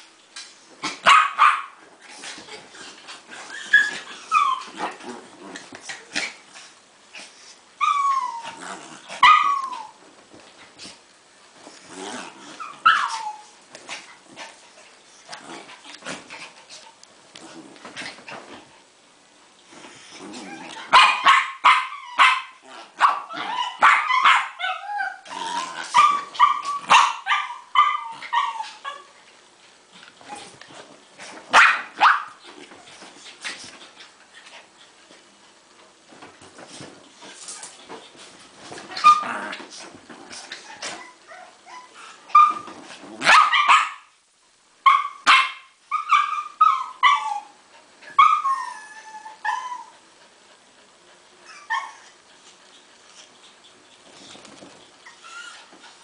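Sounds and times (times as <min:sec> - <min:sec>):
dogs play-barking: 0:00.7 - 0:10.9, 0:11.6 - 0:18.9, 0:19.9 - 0:35.4, 0:36.1 - 0:44.2, 0:44.8 - 0:56.0.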